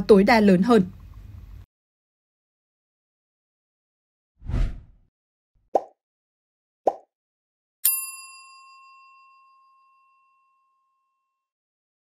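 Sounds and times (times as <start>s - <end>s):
notification bell ding: 7.8s - 11.0s.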